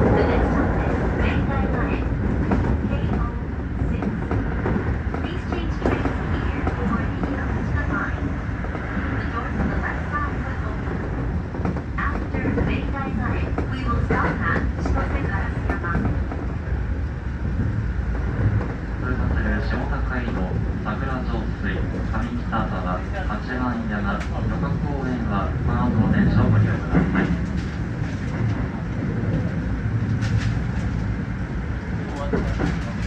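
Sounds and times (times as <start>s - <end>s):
people talking: 0.0s - 2.2s, 2.8s - 4.4s, 5.2s - 8.4s, 9.1s - 10.9s, 12.0s - 16.2s
electric train rumbling: 0.0s - 33.0s.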